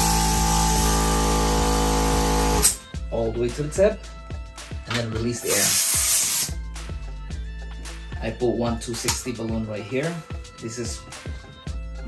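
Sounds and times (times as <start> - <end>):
background music with a beat: 0.0 - 12.0
air hissing out of balloon: 5.4 - 6.6.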